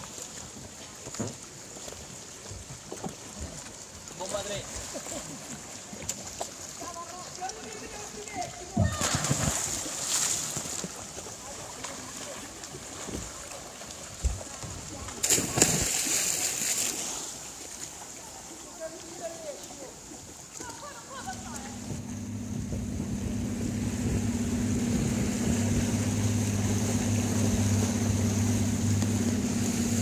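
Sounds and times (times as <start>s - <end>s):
churning water: 0.0s - 30.0s
people splashing into water: 3.1s - 30.0s.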